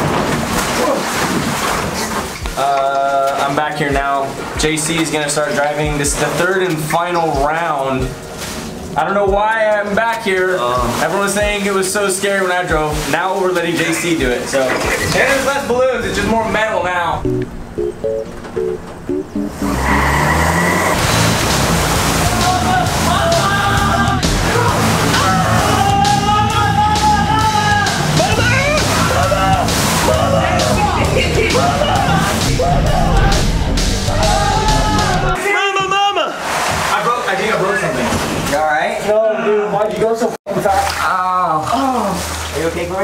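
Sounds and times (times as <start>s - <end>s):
music with short notes: 17.2s - 20.1s
water balloons crashing in truck: 20.9s - 25.8s
people yelling and talking: 22.1s - 36.6s.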